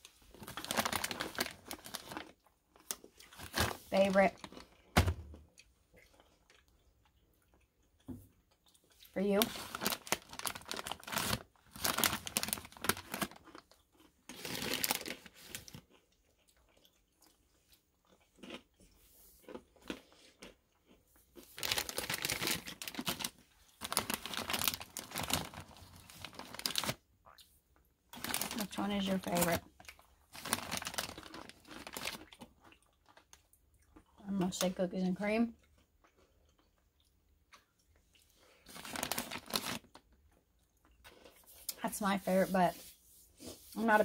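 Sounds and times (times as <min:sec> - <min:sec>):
plastic bag crinkling: 0:00.1 - 0:05.2, 0:09.2 - 0:15.9, 0:21.4 - 0:27.0, 0:28.1 - 0:33.3, 0:38.7 - 0:40.1.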